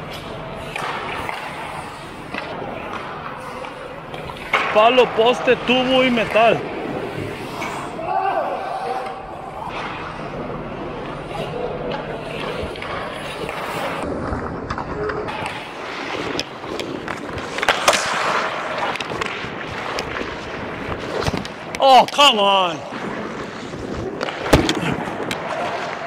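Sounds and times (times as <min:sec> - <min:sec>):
hockey sticks clacking: 0:00.0 - 0:26.0
skate blades scraping ice: 0:00.0 - 0:26.0
sharp knocks of sticks or puck: 0:16.4 - 0:20.2, 0:21.0 - 0:22.4.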